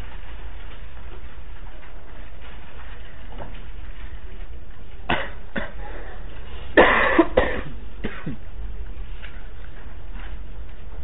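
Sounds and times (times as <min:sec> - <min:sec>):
person coughing: 0:05.1 - 0:08.4.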